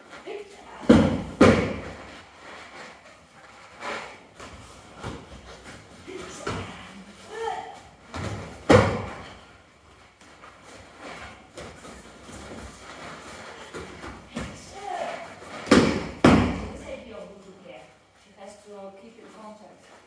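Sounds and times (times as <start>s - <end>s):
bodies landing on foam mats: 0.8s - 2.1s, 7.8s - 9.5s, 11.3s - 16.9s
footfalls on mat: 8.0s - 9.4s.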